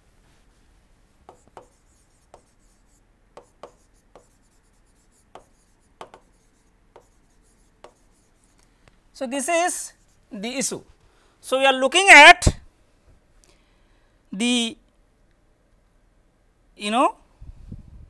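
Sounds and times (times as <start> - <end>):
stylus tapping on tablet screen: 1.3 - 8.3.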